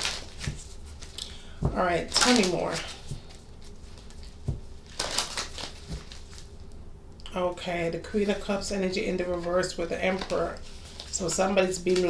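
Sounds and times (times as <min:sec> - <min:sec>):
cards riffle shuffling: 0:00.0 - 0:06.5.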